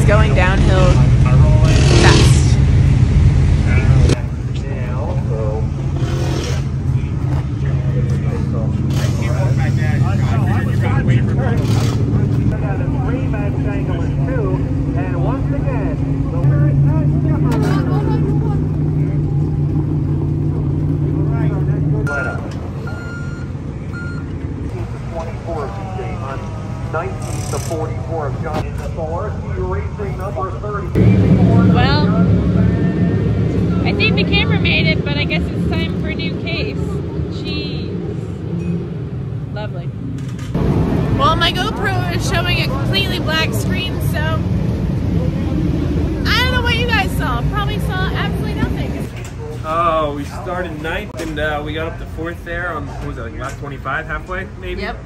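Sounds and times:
people talking: 0:00.0 - 0:02.6, 0:03.7 - 0:05.7, 0:06.8 - 0:19.4, 0:21.2 - 0:22.6, 0:24.7 - 0:33.0, 0:33.7 - 0:38.0, 0:39.6 - 0:39.9, 0:41.2 - 0:44.4, 0:46.2 - 0:55.0
race car engines droning: 0:00.0 - 0:55.0.

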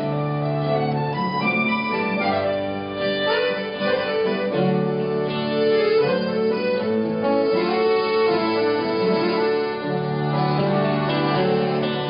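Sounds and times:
accordion sustained notes: 0:00.0 - 0:12.0
acoustic guitars strumming: 0:00.0 - 0:12.0.

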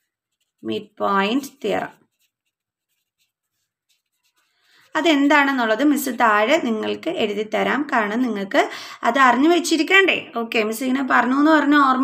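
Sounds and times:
felt-tip pen scratching on paper: 0:00.0 - 0:06.1.

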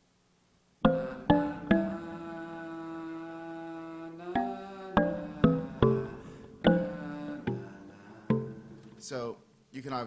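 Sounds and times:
marimba-like mallet notes: 0:00.8 - 0:02.6, 0:04.4 - 0:09.0
male vocal line: 0:00.9 - 0:09.1.

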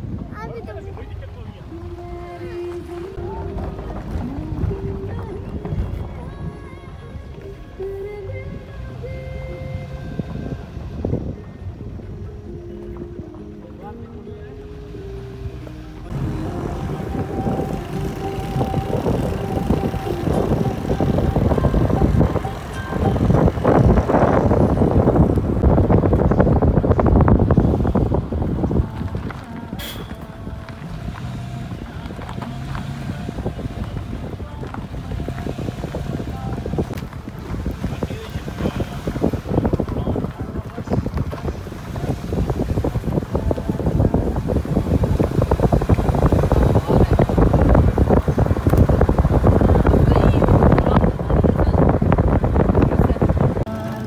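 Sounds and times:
car rumbling on rough dirt road: 0:00.0 - 0:54.0
wind buffeting microphone: 0:00.0 - 0:54.0
background music with held notes: 0:01.6 - 0:25.6.

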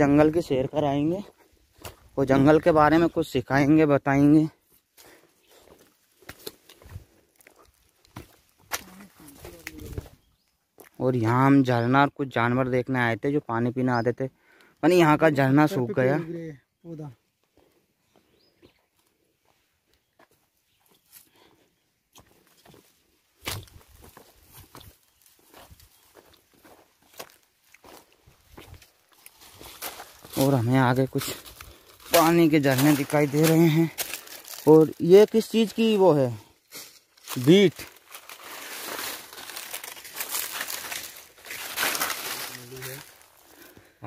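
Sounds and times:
footsteps crunching on dry leaves: 0:01.0 - 0:03.1, 0:04.6 - 0:11.0, 0:22.2 - 0:43.9.

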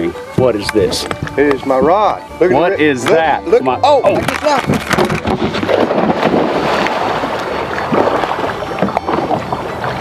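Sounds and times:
water splashing and churning: 0:03.8 - 0:10.0
wind on microphone: 0:04.1 - 0:10.0
person diving into water: 0:05.0 - 0:09.6.

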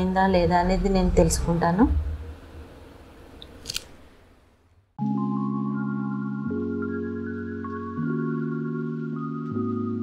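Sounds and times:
faint low room noise: 0:00.0 - 0:10.0.

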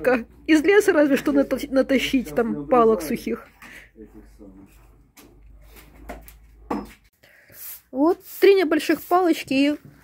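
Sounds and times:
broom sweeping stone paving: 0:07.4 - 0:10.0.

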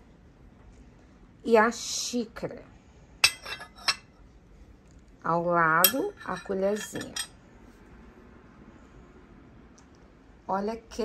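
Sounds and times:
teaspoon clinking on saucer: 0:03.2 - 0:04.0, 0:05.8 - 0:07.3.

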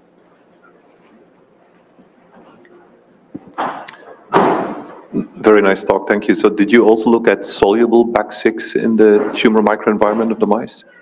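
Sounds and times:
microphone handling click: 0:03.3 - 0:05.1
microphone handling bumps: 0:03.3 - 0:05.4.

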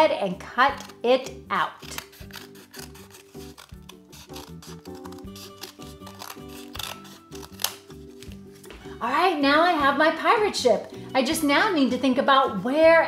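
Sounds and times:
background music: 0:00.0 - 0:13.0
scissors cutting cardboard: 0:01.8 - 0:08.4.

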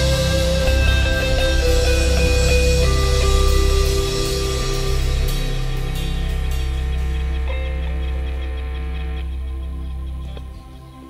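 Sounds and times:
held low bass note: 0:00.0 - 0:10.8
live band sustained chords: 0:00.0 - 0:11.0.

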